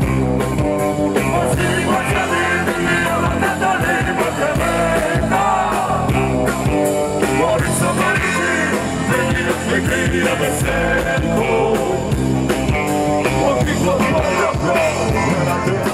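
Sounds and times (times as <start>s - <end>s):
drum beat: 0.0s - 15.9s
guitar: 0.0s - 15.9s
person singing: 1.2s - 6.2s, 7.2s - 12.2s, 13.2s - 15.9s.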